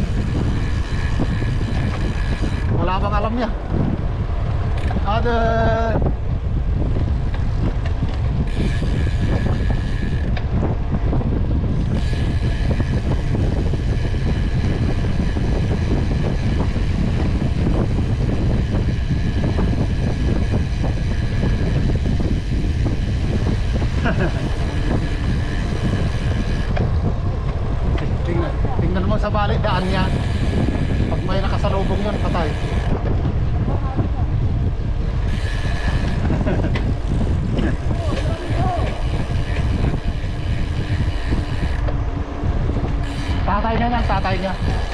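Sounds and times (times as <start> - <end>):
wind rush on microphone: 0.0 - 44.9.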